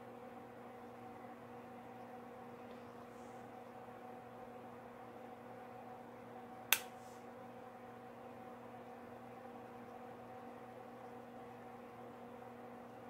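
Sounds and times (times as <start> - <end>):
low electrical hum: 0.0 - 13.0
sharp click: 6.7 - 6.9.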